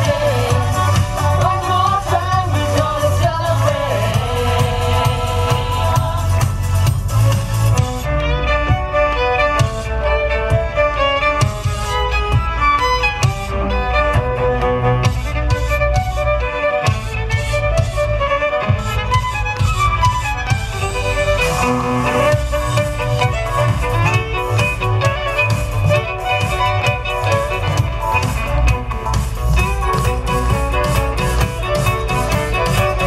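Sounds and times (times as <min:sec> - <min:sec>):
backing track with bass and beat: 0:00.0 - 0:33.0
violins playing in harmony: 0:00.0 - 0:33.0.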